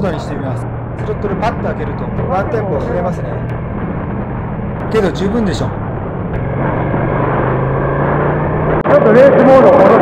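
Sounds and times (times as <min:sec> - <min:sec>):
motorcycle engine running: 0:00.0 - 0:09.9.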